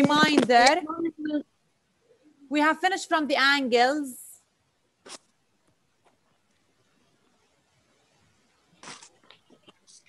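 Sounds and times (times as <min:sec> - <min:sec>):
brief rustle: 0:08.8 - 0:10.0.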